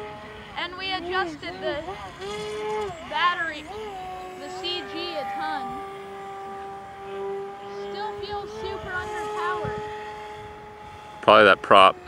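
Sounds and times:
electric motor and propeller whine: 0:00.0 - 0:12.0.

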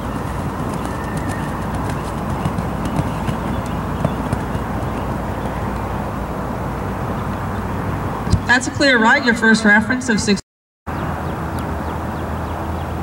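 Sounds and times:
horse hoofbeats on sand: 0:00.0 - 0:06.0
outdoor background rush: 0:00.0 - 0:13.0.

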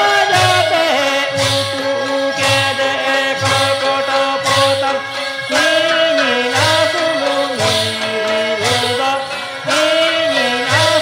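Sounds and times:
drum beating: 0:00.0 - 0:11.0.

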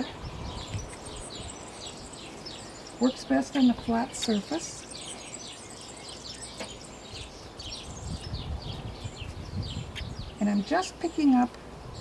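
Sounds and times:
small birds chirping: 0:00.0 - 0:12.0.

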